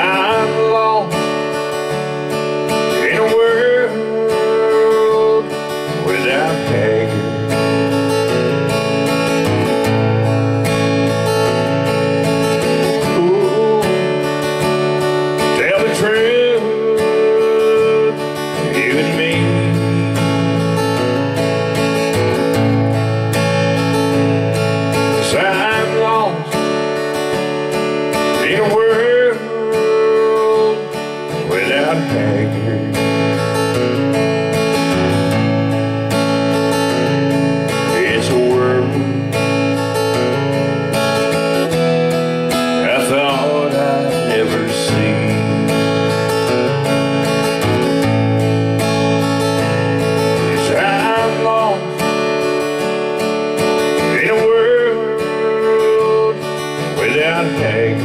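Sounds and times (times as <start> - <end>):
man singing: 0.0 - 35.5, 36.1 - 58.0
acoustic guitar strumming: 0.0 - 58.0.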